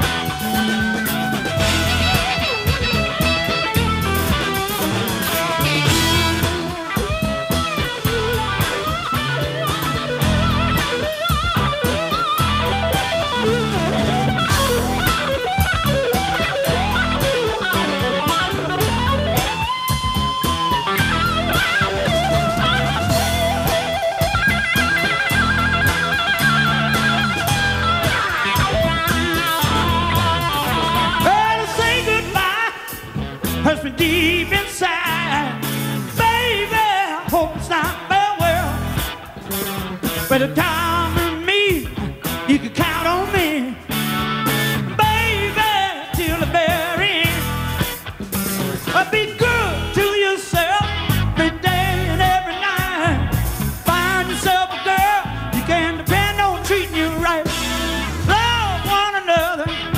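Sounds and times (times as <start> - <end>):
drum kit: 0.0 - 59.9
electric guitar lead: 0.0 - 59.9
walking bass line: 0.0 - 59.9.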